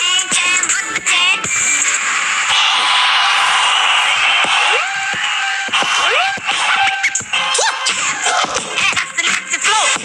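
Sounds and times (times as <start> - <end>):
electronic dance music: 0.0 - 10.0
chopped synthetic vocal samples: 4.4 - 10.0.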